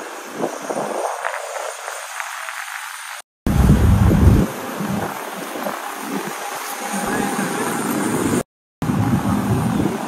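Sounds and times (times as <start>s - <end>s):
steady rushing outdoor noise: 0.0s - 10.0s
low rumble: 3.5s - 5.1s.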